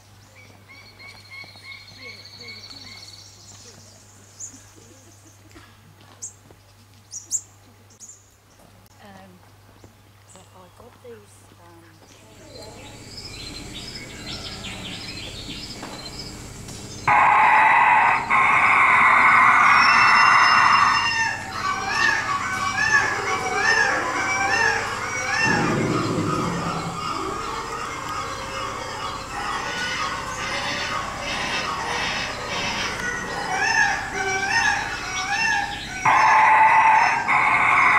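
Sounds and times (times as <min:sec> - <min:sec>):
bird chirping calls: 0:19.6 - 0:36.6
low rumble: 0:25.2 - 0:28.8
loud rushing hiss: 0:25.4 - 0:27.7.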